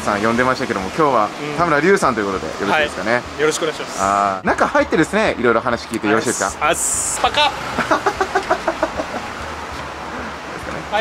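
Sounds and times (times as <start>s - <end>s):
man laughing: 7.7s - 9.3s.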